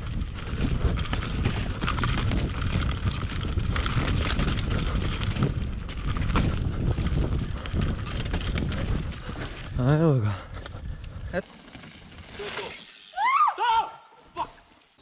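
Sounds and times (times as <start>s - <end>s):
wind buffeting microphone: 0.0s - 11.4s
bike chain and frame rattling: 0.0s - 13.4s
bike tyres rolling over dirt: 0.0s - 13.5s.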